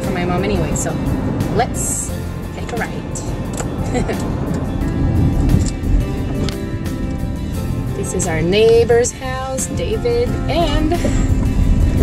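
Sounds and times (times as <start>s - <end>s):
background music: 0.0s - 12.0s
car driving rumble: 0.0s - 12.0s.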